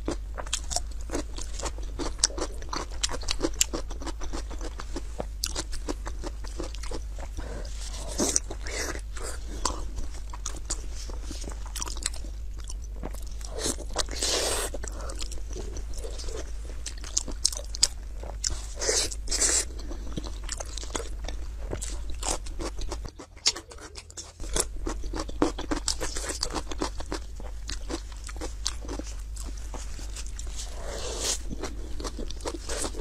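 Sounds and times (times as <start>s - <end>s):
chewing: 0.0s - 33.0s.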